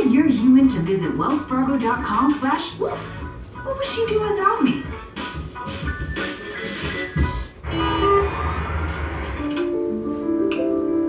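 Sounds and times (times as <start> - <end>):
commercial music from television: 0.0 - 11.0.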